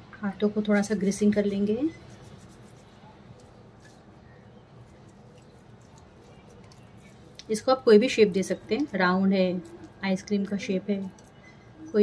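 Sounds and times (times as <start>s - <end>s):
hands rubbing minced meat: 0.7s - 10.0s.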